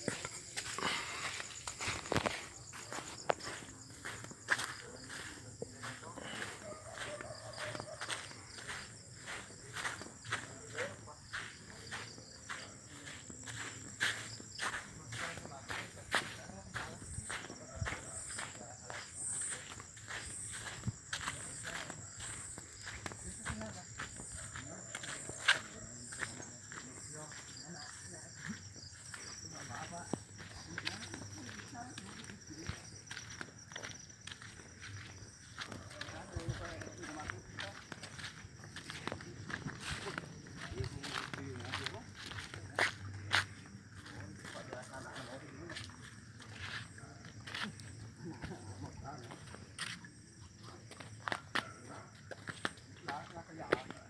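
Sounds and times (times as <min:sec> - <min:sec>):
footsteps walking: 0:00.0 - 0:54.0.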